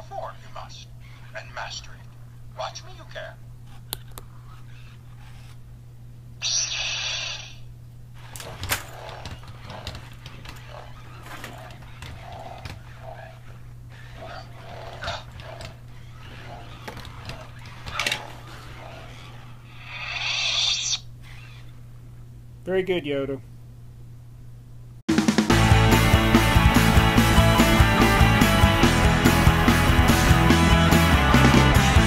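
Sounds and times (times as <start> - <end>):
electronic lightsaber sound effects: 6.4 - 21.6.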